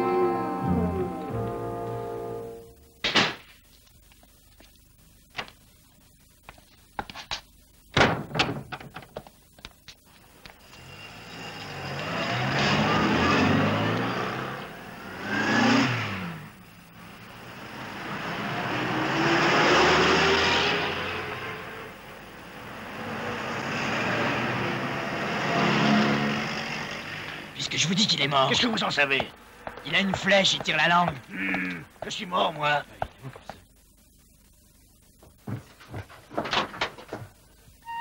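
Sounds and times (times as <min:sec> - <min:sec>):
bang: 0:03.0 - 0:03.5
cars driving past: 0:10.8 - 0:16.6, 0:17.3 - 0:27.6.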